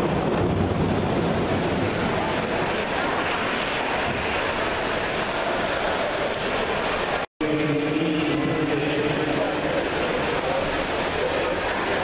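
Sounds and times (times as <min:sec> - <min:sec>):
hum of people in a hall: 0:00.0 - 0:12.0
water in indoor pool: 0:00.0 - 0:12.0.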